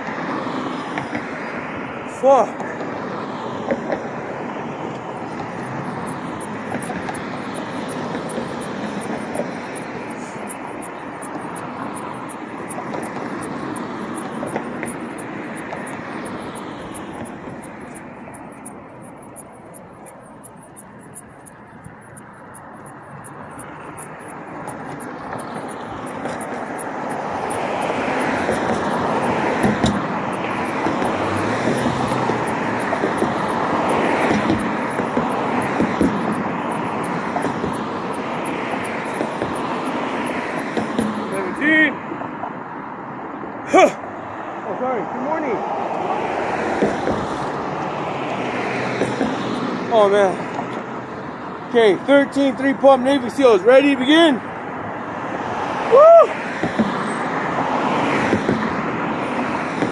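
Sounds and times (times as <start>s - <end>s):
passing road traffic: 0.0s - 59.9s.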